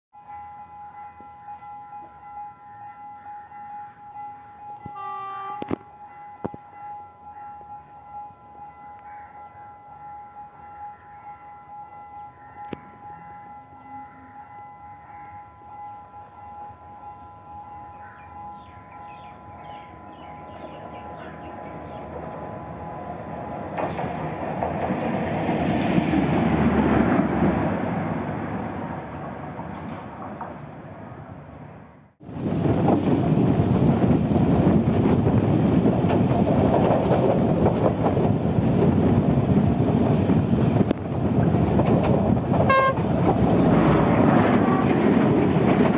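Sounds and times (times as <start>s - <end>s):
rail car rumbling on track: 0.1s - 45.9s.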